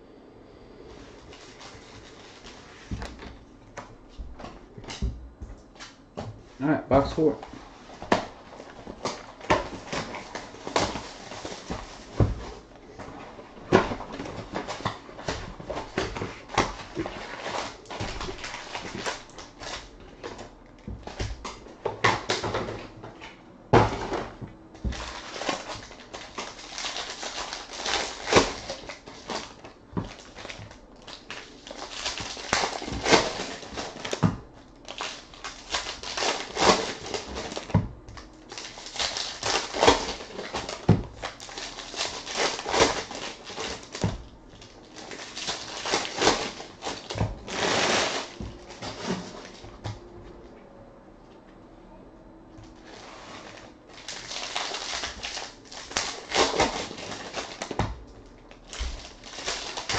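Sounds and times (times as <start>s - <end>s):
foil wrappers tearing and crinkling: 1.1s - 3.4s, 7.0s - 22.9s, 23.9s - 49.8s, 52.8s - 59.9s.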